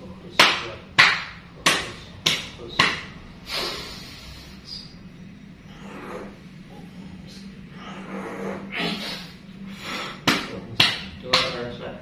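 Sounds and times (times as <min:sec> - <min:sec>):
open-hand slaps on a back: 0:00.4 - 0:03.1, 0:10.2 - 0:11.7.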